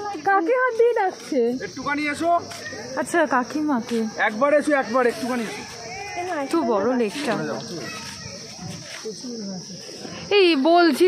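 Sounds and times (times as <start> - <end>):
people talking: 0.0 - 11.0
steady high-pitched hiss: 0.0 - 11.0.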